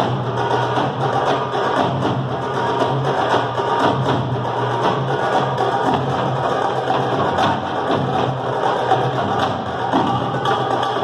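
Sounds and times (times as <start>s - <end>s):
hand drum strikes: 0.0s - 11.0s.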